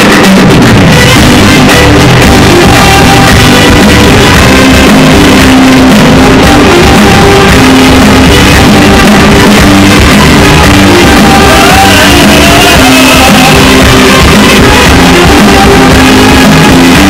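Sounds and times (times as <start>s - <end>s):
live band with keyboards and guitars: 0.0s - 17.0s.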